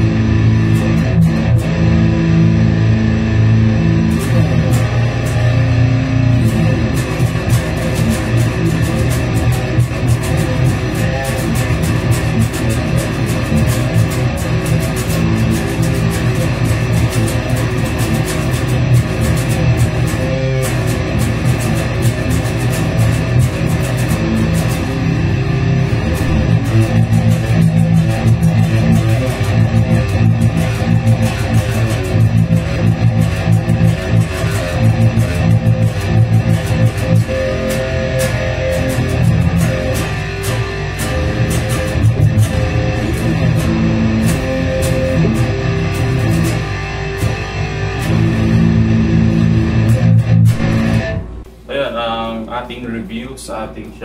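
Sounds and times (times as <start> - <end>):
electric guitar riffs and chords: 0.0 - 51.9.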